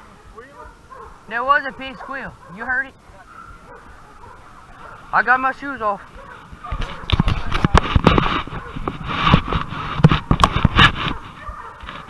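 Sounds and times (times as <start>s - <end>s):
brush rustling: 0.0s - 12.0s.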